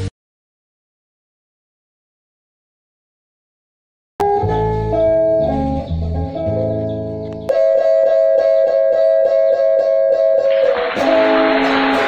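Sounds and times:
electric guitars and bass instrumental: 4.2 - 12.0.

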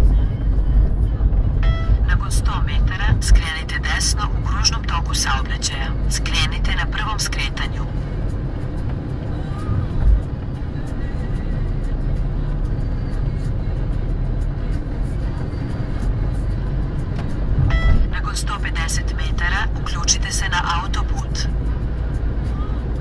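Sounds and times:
car engine and tyres rumbling: 0.0 - 23.0.

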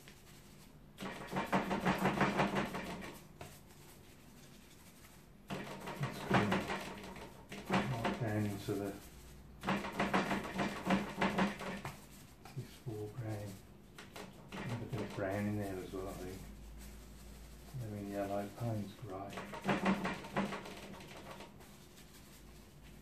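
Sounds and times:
person speaking indistinctly: 7.7 - 9.3, 12.5 - 13.7, 14.5 - 16.7, 17.4 - 19.9.

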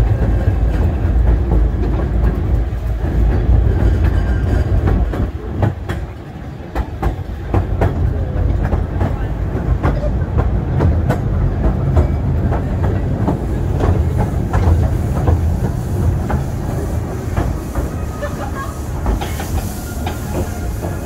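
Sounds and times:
train carriage rumble: 0.0 - 21.0.

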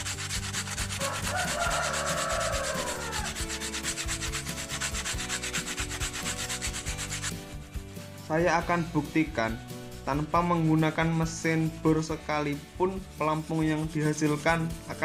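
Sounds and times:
sandpaper rubbing on foam: 0.0 - 8.8, 10.1 - 15.0.

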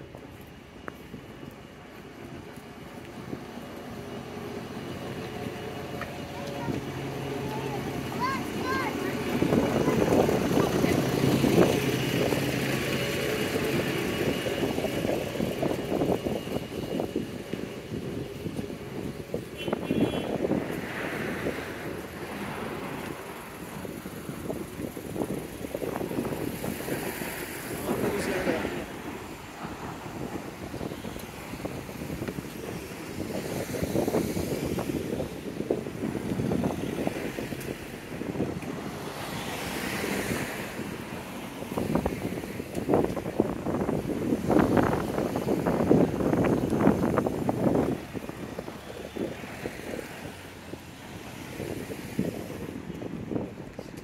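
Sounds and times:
bus diesel engine passing: 0.0 - 54.0
cars driving by: 0.0 - 54.0.

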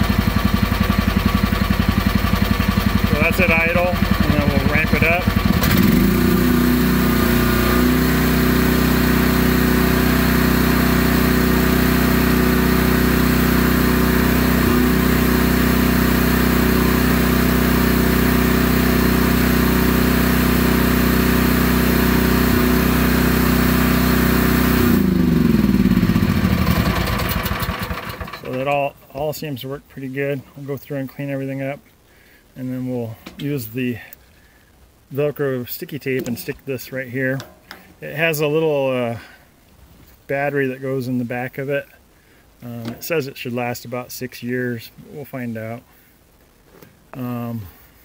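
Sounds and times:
excavator engine revving: 0.0 - 28.6.

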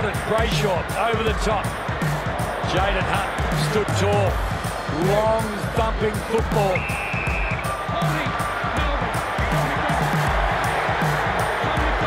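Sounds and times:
background music with steady beat: 0.0 - 12.0
high whistle-like tone: 6.8 - 7.6.

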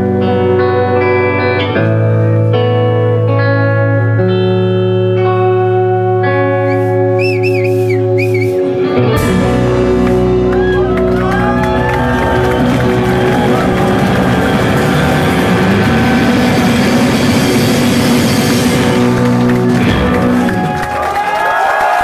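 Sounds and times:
rock band playing loud: 0.0 - 21.4
audience cheering: 9.6 - 22.0.

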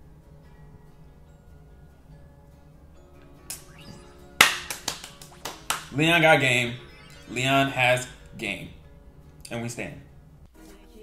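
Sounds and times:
faint background music: 0.0 - 11.0
sharp percussive hits: 3.5 - 8.4.

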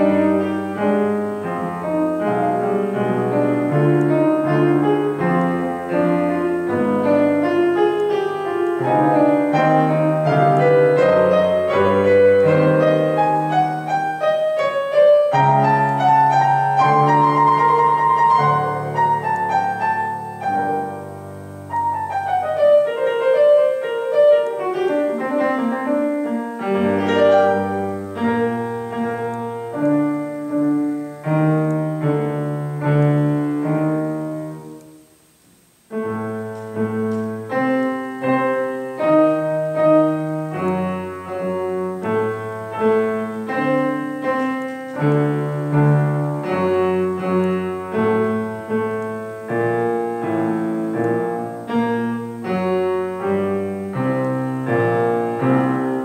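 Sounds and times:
two pianos playing classical piece: 0.0 - 56.0.

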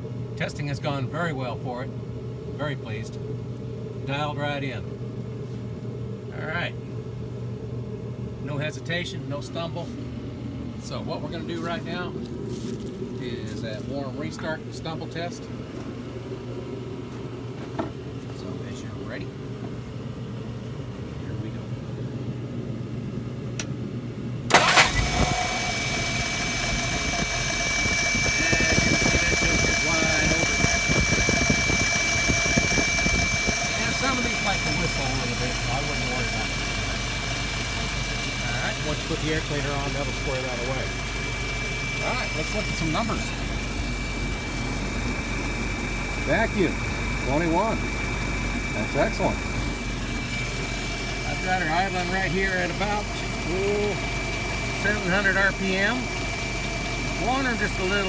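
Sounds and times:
car engine starting and running: 24.4 - 58.0.

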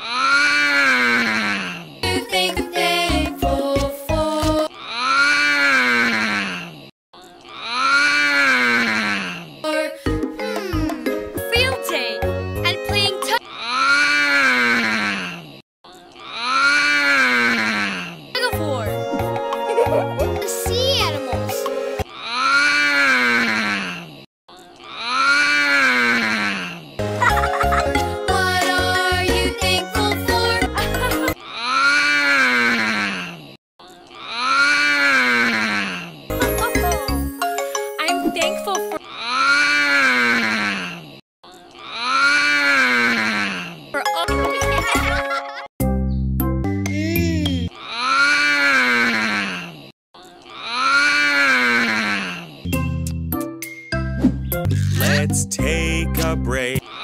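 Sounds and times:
children's song music: 2.0 - 4.7, 9.7 - 13.4, 18.4 - 22.0, 27.0 - 31.4, 36.3 - 39.0, 44.0 - 47.7, 52.7 - 56.9
drawn-out vocal groan: 54.7 - 57.0.

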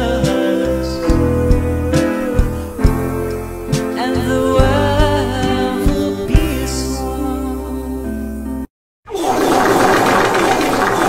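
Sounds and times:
soft song: 0.0 - 8.7.

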